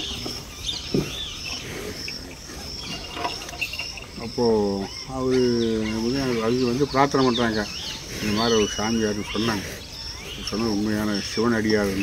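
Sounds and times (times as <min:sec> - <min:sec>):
birds chirping: 0:00.0 - 0:12.0
insects buzzing drone: 0:00.0 - 0:12.0.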